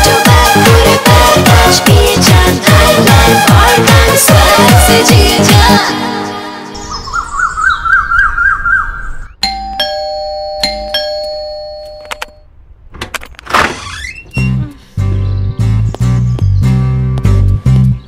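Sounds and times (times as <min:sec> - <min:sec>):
two-tone doorbell chime: 0:09.4 - 0:12.5
guitar-led film music: 0:14.4 - 0:18.0.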